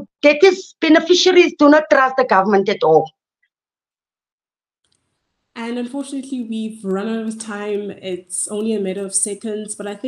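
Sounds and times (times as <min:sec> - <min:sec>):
woman's voice: 0:00.0 - 0:03.1.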